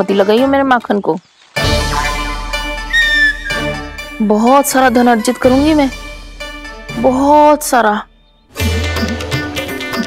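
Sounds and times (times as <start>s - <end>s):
background music with held tones: 1.6s - 10.0s.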